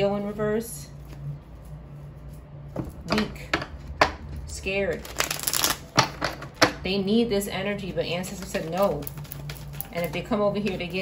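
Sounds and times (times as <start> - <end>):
cards being riffled: 8.2 - 10.2.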